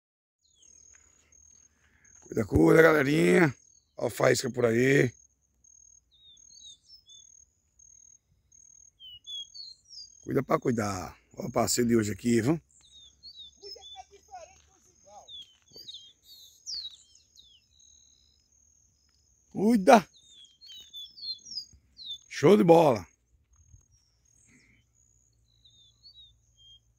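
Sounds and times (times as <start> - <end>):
bird singing whistled notes: 0.4 - 10.6, 12.5 - 26.9
bird singing descending whistles: 12.8 - 18.4, 20.0 - 22.3, 25.5 - 26.9
high insect trill: 12.8 - 21.4.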